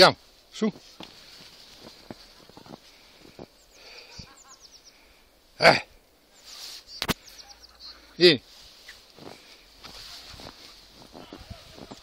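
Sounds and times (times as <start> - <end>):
high falling bird chirps: 3.5 - 5.1, 6.3 - 8.2.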